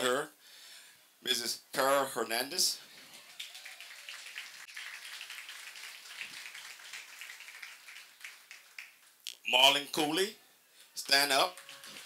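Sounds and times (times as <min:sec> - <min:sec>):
audience applauding: 0:03.0 - 0:09.2, 0:11.0 - 0:12.0.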